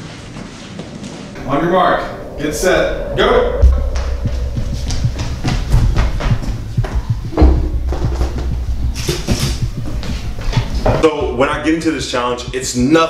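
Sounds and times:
deep rumbling thumps: 0:01.4 - 0:13.0.

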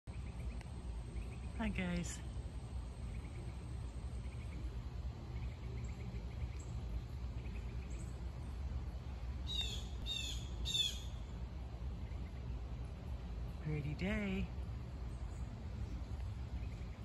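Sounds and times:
steady low rumble: 0:00.1 - 0:17.0
bird calling: 0:02.9 - 0:08.4, 0:09.4 - 0:11.4.

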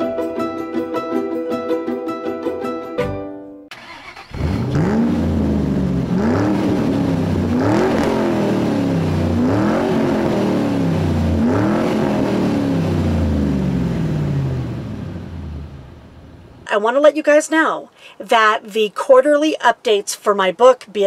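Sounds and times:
engine with rising and falling pitch: 0:04.0 - 0:16.5.

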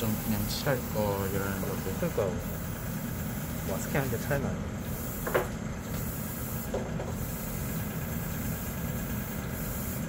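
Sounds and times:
machinery hum with hiss: 0:00.0 - 0:10.0.

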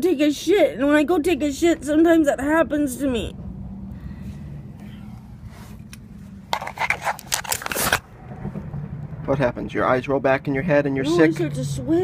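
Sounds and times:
steady low hum: 0:00.6 - 0:11.0
phone microphone rubbing and rustling: 0:05.3 - 0:08.1.

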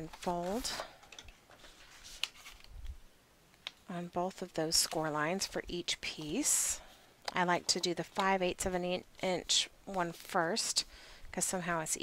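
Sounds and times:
paper rustling: 0:00.0 - 0:00.9, 0:01.5 - 0:02.8.

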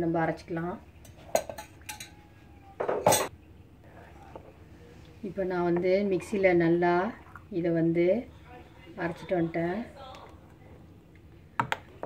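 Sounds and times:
glass bowls clinking: 0:01.0 - 0:03.3.

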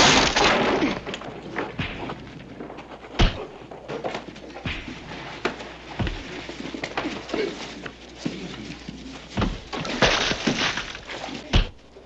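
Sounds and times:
knocks and thuds of blows: 0:00.0 - 0:03.6, 0:04.6 - 0:07.4, 0:09.3 - 0:11.9.

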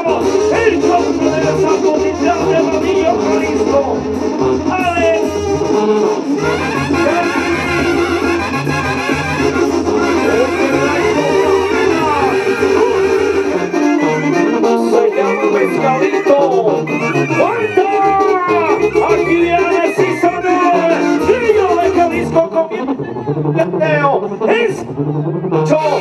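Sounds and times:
brass band music: 0:00.0 - 0:26.0.

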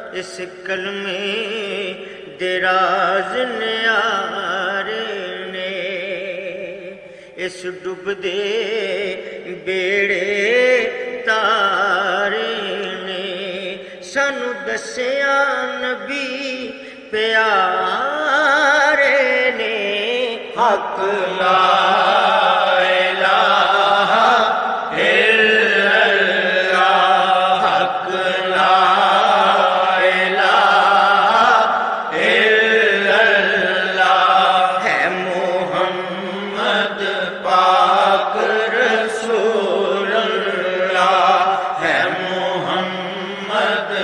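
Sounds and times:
person chanting devotional song: 0:00.0 - 0:44.0.

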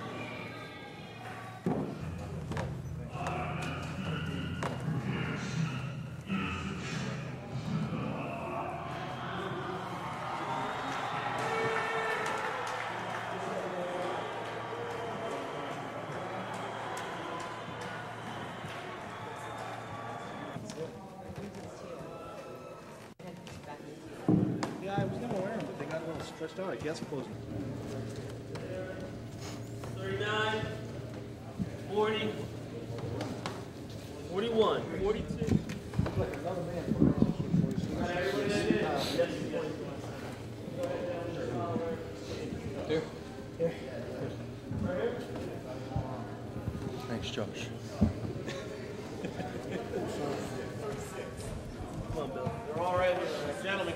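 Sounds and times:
indistinct voices: 0:00.0 - 0:22.9
men chattering: 0:02.5 - 0:09.9, 0:34.3 - 0:53.9.

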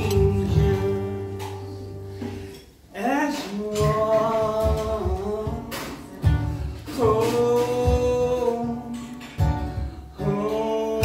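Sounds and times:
strummed acoustic guitar: 0:00.0 - 0:11.0.

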